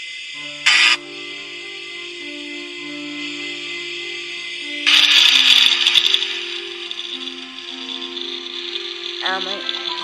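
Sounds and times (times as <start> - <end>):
music from phone speaker: 0.4 - 10.0.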